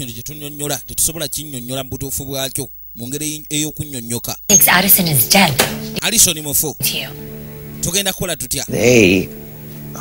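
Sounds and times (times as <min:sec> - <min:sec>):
background music with low drone: 0:05.2 - 0:10.0
man talking: 0:07.8 - 0:09.3.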